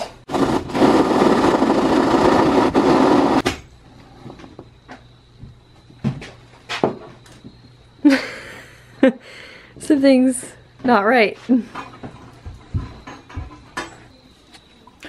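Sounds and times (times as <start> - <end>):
saw cutting through plywood: 0.3 - 3.4.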